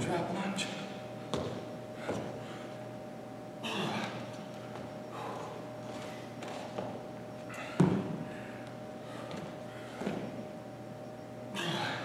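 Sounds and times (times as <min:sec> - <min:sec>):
faint steady hum: 0:00.0 - 0:12.0
sneakers thudding on gym floor: 0:01.3 - 0:02.3, 0:07.8 - 0:08.2.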